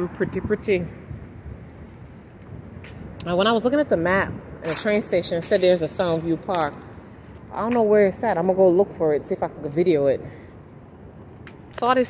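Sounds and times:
street noise: 0:00.0 - 0:12.0
wind buffeting microphone: 0:00.0 - 0:12.0.

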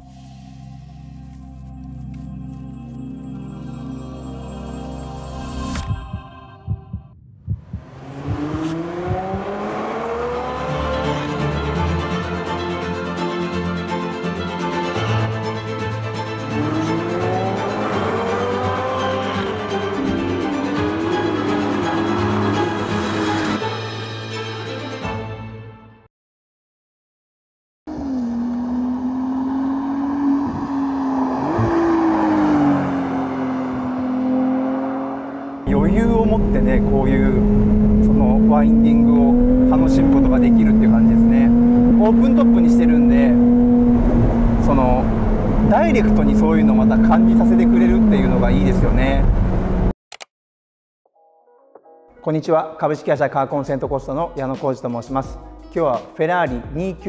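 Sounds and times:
deep thumps: 0:05.8 - 0:09.6
tyre and road noise: 0:07.7 - 0:11.1, 0:27.9 - 0:49.9
car engine accelerating: 0:07.7 - 0:12.2, 0:16.3 - 0:23.6, 0:27.9 - 0:49.9
engine drone inside car cabin: 0:35.6 - 0:49.9.

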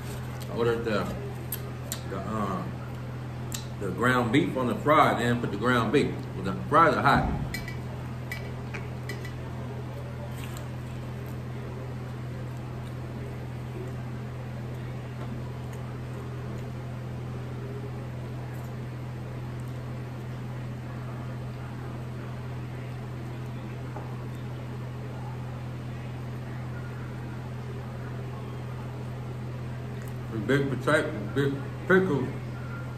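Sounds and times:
chewing burger: 0:00.0 - 0:03.8, 0:07.9 - 0:25.5
fan humming: 0:00.0 - 0:32.9.

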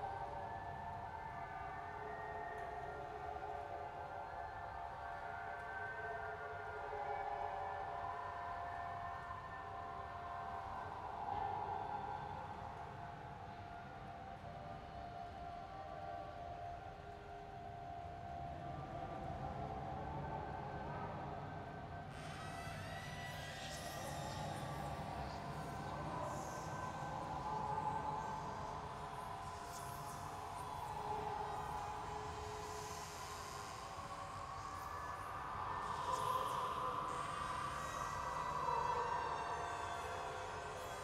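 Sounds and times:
eerie held drone tones: 0:17.0 - 0:41.0.

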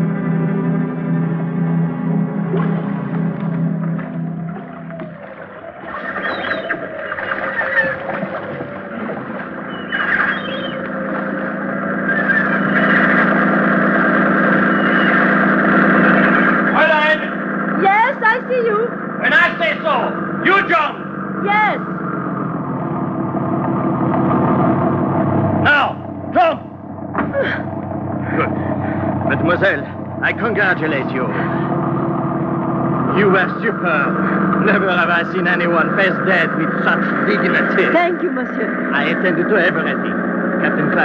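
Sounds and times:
motorboat engine humming: 0:00.0 - 0:41.0
voice-like calls: 0:02.5 - 0:22.1.

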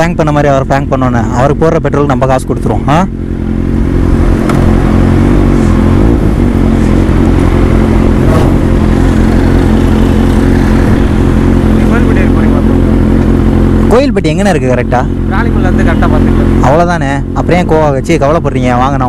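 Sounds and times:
motorcycle engine at low revs: 0:00.0 - 0:19.0.

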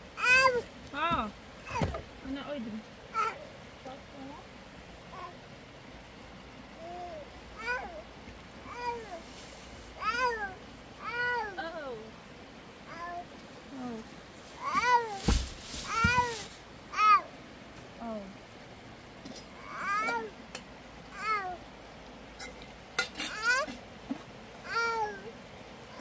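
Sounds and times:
rustle with a thump: 0:00.2 - 0:02.3, 0:08.7 - 0:10.6, 0:13.0 - 0:18.0.

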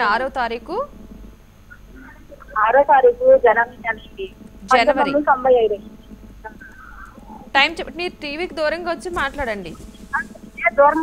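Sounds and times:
woman speaking: 0:00.0 - 0:00.9, 0:04.7 - 0:05.3, 0:07.5 - 0:09.8.

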